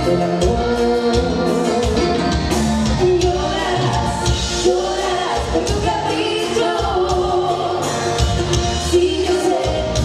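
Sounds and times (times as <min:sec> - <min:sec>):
button accordion: 0:00.0 - 0:06.4
bass guitar: 0:00.0 - 0:10.0
drums: 0:00.0 - 0:10.0
woman singing: 0:02.8 - 0:10.0.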